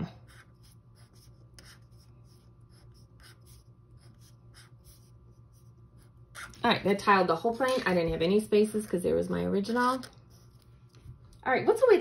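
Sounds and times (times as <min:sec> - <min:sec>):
marker drawing on paper: 0:00.0 - 0:06.6.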